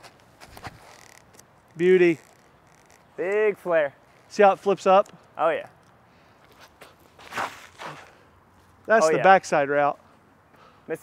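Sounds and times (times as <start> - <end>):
soft footsteps: 0.0 - 3.2.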